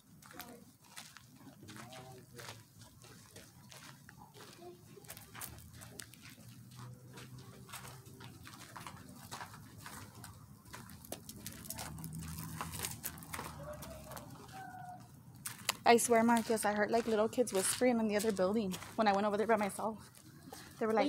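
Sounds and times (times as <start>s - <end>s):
footsteps crunching on dirt: 0.0s - 21.0s.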